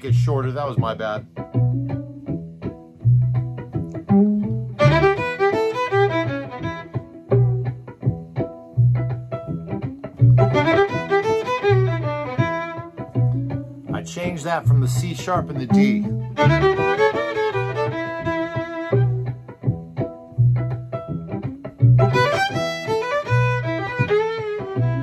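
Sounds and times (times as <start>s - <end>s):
backing groove with pulsing bass: 0.0s - 25.0s
fiddle playing bluesy phrases: 0.0s - 25.0s.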